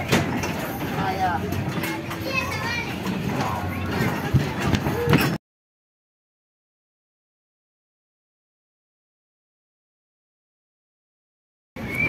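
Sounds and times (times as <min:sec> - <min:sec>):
background din with music: 0:00.0 - 0:05.4
children calling out and chattering: 0:00.6 - 0:05.4.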